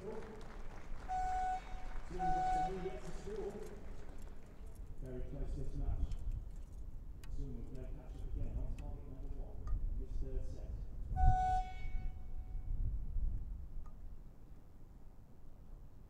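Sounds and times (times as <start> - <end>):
faint voices: 0.0 - 5.9
horn tone: 1.0 - 3.4, 11.1 - 12.7.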